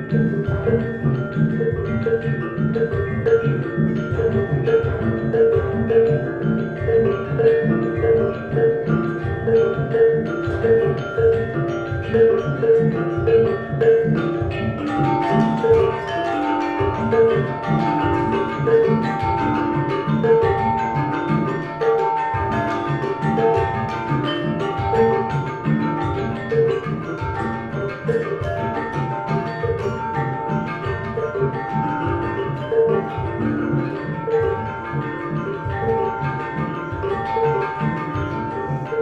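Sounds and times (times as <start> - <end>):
gamelan ensemble playing: 0.0 - 39.0.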